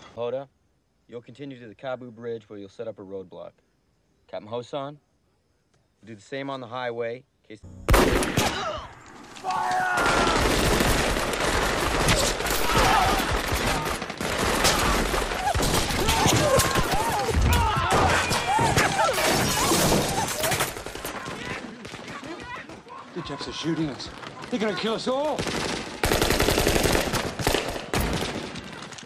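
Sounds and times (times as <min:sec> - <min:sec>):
dense gunfire: 0:07.8 - 0:08.9, 0:10.0 - 0:18.3, 0:24.4 - 0:28.8.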